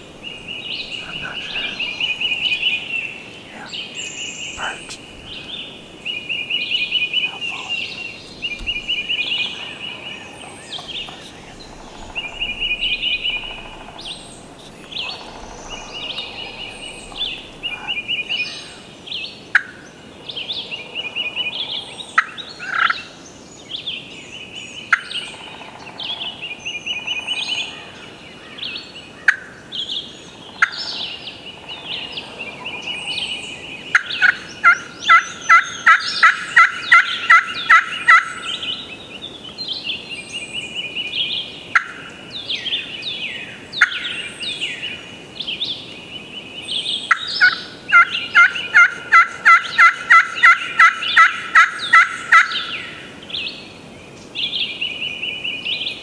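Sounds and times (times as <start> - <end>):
wild turkey yelping: 0.0 - 18.8, 47.1 - 52.7
songbirds chirping: 0.0 - 56.0.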